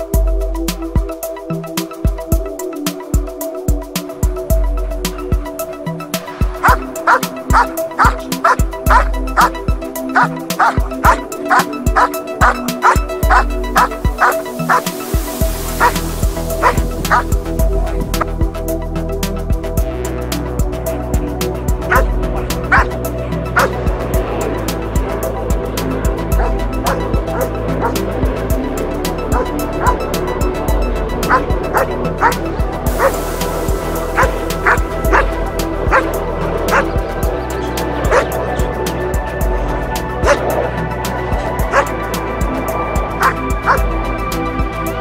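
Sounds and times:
background music: 0.0s - 45.0s
dog barking: 6.6s - 9.5s, 10.1s - 14.9s, 15.8s - 16.0s, 16.6s - 17.3s, 21.9s - 22.1s, 22.7s - 22.9s, 23.6s - 23.8s, 26.4s - 28.0s, 29.4s - 30.0s, 31.3s - 32.4s, 33.0s - 33.2s, 34.2s - 35.3s, 35.9s - 36.1s, 36.7s - 36.9s, 38.1s - 38.3s, 40.2s - 40.6s, 41.7s - 41.9s, 43.2s - 43.8s.

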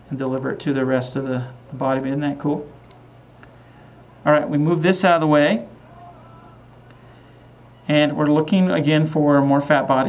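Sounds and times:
steady low hum: 0.0s - 10.0s
man speaking: 0.1s - 2.8s, 4.2s - 6.5s, 7.8s - 10.0s.

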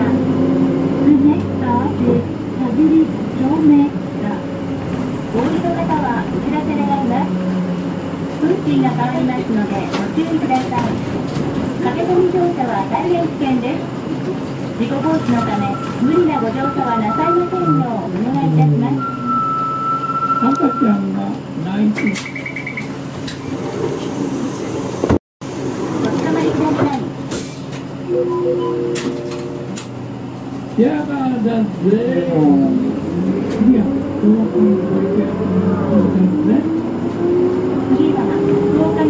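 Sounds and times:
voices inside a bus: 0.0s - 25.1s, 25.8s - 39.0s
bus running noise: 0.0s - 39.0s
steady electronic tones: 18.7s - 20.8s, 28.1s - 30.4s
short fast beeping: 19.0s - 20.9s.

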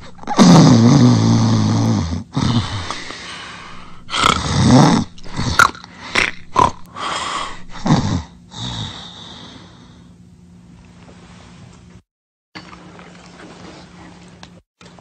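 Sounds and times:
person snoring and snorting: 0.0s - 9.9s.

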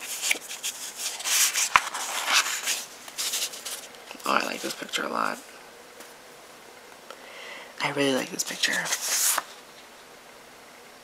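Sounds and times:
album pages turning: 0.0s - 5.4s, 8.1s - 9.9s.

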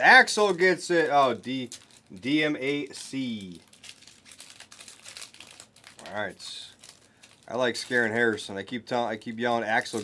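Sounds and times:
plastic wrappers crinkling: 0.2s - 10.0s.

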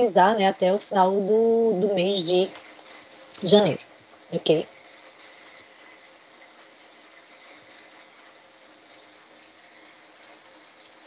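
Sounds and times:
faint steady hiss: 0.0s - 11.0s
thin steady tones: 0.0s - 11.0s.

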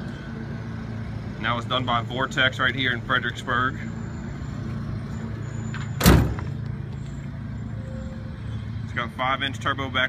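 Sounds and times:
loud slam: 6.0s - 6.4s.

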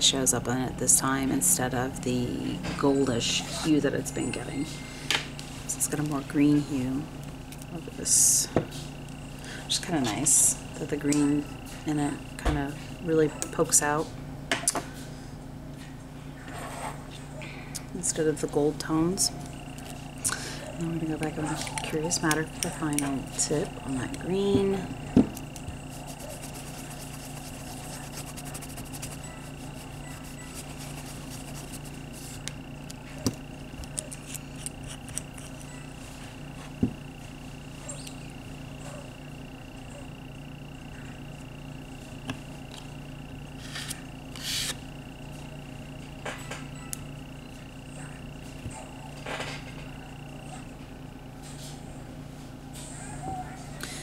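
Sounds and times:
steady electrical hum: 0.0s - 54.0s
faint high whine: 17.9s - 51.0s.

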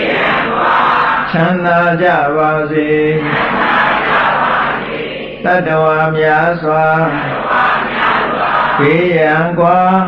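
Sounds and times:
man chanting: 1.2s - 3.4s, 5.4s - 7.5s, 8.8s - 10.0s.

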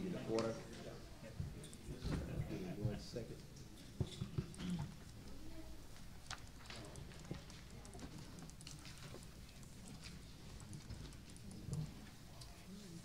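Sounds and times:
low murmur of voices: 0.0s - 13.0s
faint clicks and taps: 1.4s - 13.0s.

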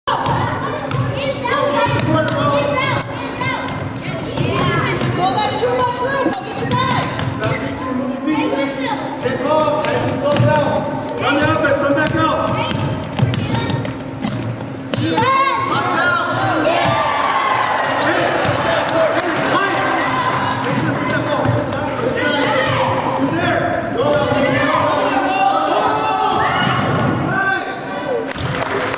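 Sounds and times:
shouts and chatter echoing: 0.1s - 28.9s
basketball bouncing on hardwood floor: 10.3s - 10.8s, 11.4s - 15.3s.

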